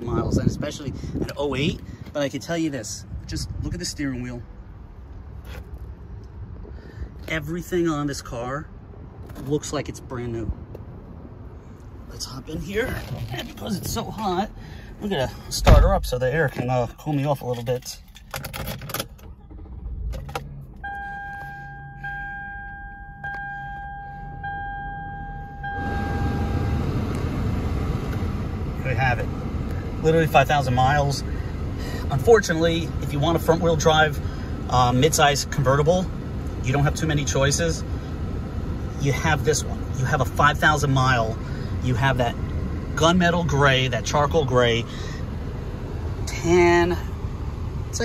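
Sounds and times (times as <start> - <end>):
low outdoor rumble: 0.0 - 48.0
car warning chime dinging: 20.8 - 26.9.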